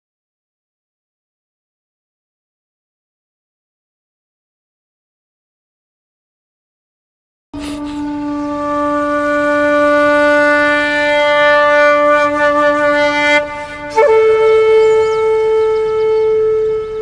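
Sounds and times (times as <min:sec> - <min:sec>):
wind instrument long notes: 0:07.6 - 0:17.0.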